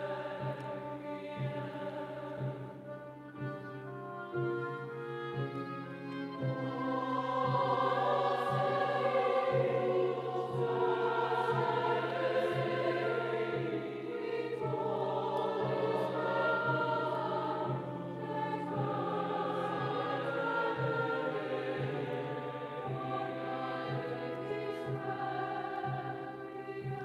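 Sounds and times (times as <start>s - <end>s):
orchestra playing: 0.0s - 26.1s
mixed choir singing: 0.0s - 27.0s.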